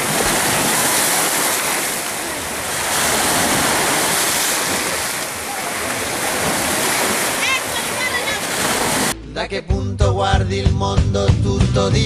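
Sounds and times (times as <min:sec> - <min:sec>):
sea surf washing on shore: 0:00.0 - 0:09.2.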